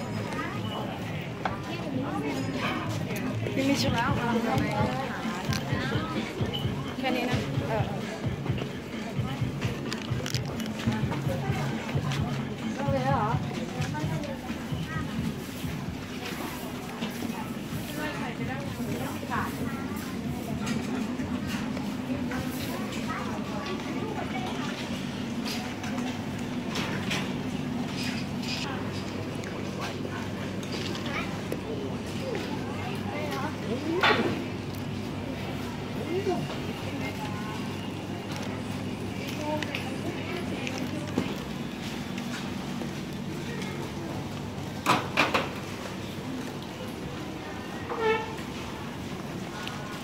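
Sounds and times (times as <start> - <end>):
people talking: 0.0 - 50.0.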